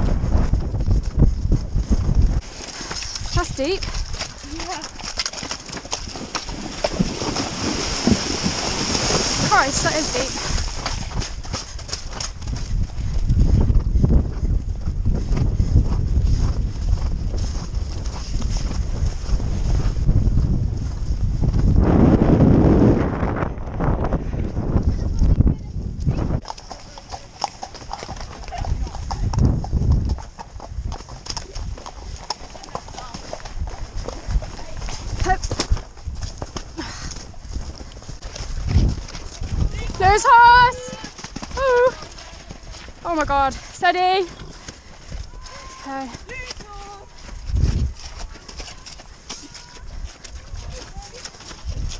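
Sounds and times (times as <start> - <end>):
hooves clip-clopping on tarmac: 0.0 - 22.1, 23.6 - 51.9
horse galloping on grass: 0.0 - 51.9
wind: 0.0 - 51.9.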